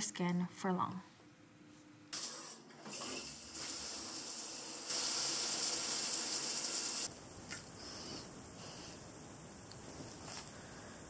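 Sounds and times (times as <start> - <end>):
shower head spraying water: 2.2 - 7.6.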